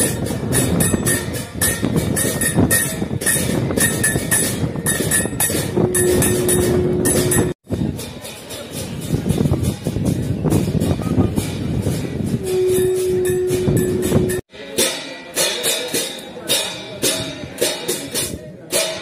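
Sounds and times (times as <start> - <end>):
held note: 0.0 - 7.6, 12.4 - 15.4
bells and cymbals clanging: 0.0 - 19.0.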